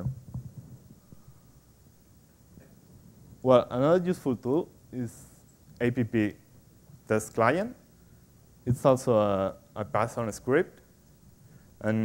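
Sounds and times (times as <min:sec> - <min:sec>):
faint low knocks: 0:00.0 - 0:01.2
man speaking: 0:03.4 - 0:06.4, 0:07.1 - 0:07.8, 0:08.7 - 0:10.8.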